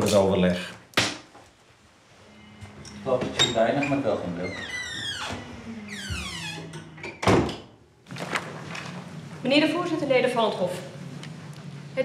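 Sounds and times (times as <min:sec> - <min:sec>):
door shutting thunk: 0:06.0 - 0:07.7.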